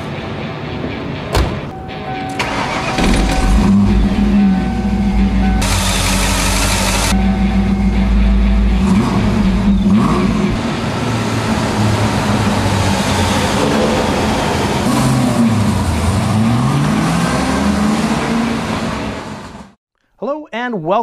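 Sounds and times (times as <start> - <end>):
car engine revving: 2.4 - 19.8.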